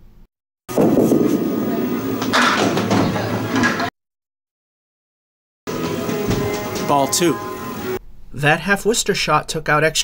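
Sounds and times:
bowling ball rolling on wooden lane: 0.7 - 3.9
bowling pins clattering: 0.7 - 3.9.

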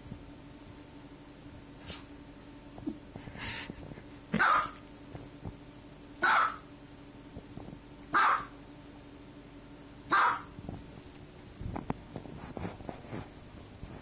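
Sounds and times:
small dog barking: 4.4 - 4.8, 6.2 - 6.7, 8.1 - 8.6, 10.1 - 10.6.

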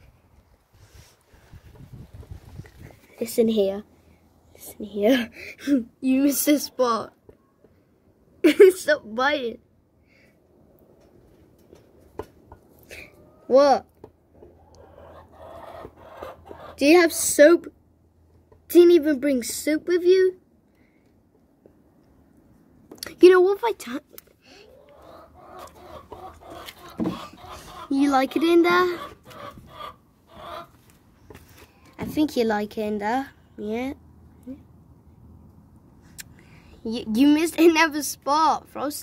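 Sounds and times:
chicken clucking: 14.5 - 16.8, 24.7 - 30.8.

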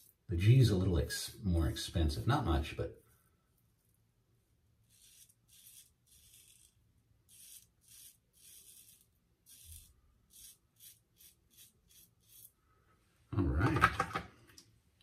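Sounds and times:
safety razor scraping stubble: 4.9 - 12.5.

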